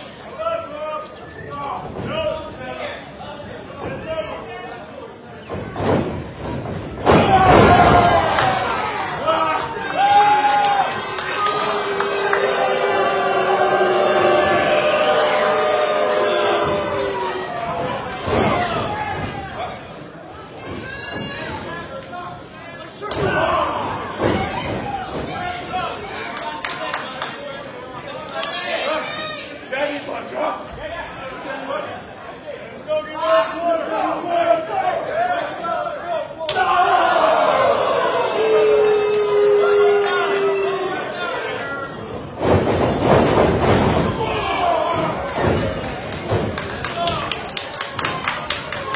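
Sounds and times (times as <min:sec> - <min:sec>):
crowd shouting and cheering: 0:05.5 - 0:31.0, 0:32.9 - 0:48.9
crowd shouting: 0:07.1 - 0:19.2, 0:36.5 - 0:41.6.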